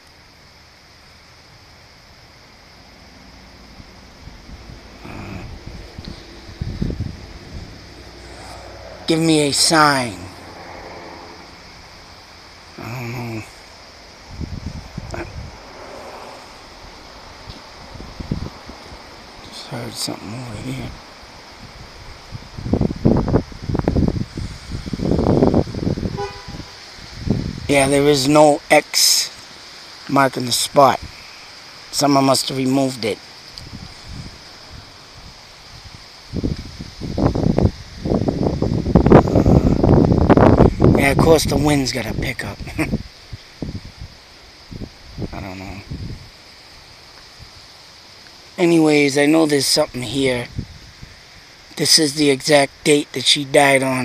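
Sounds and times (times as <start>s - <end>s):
wind blowing: 0.0s - 54.0s
low rumble on microphone: 2.9s - 19.7s, 36.4s - 46.3s.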